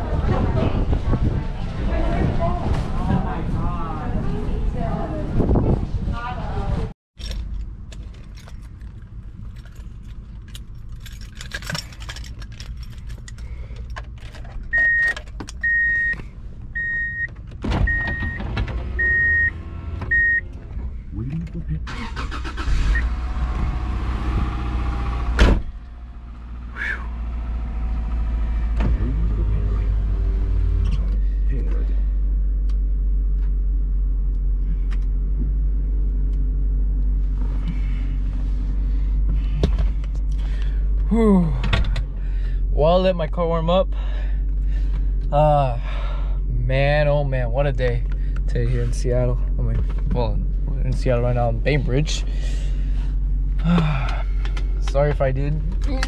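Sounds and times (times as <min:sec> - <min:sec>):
car engine cranking and starting: 0:07.2 - 0:42.8, 0:43.7 - 0:56.0
car engine idling: 0:30.9 - 0:56.0.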